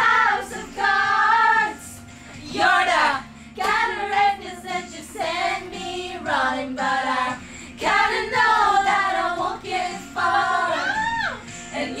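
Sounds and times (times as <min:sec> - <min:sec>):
woman singing pop melody: 0:00.0 - 0:12.0.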